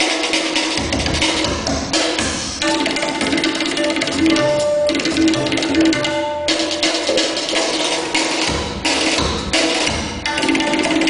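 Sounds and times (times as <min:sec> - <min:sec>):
drum strokes: 0:00.0 - 0:11.0
steady held tone: 0:02.6 - 0:07.7.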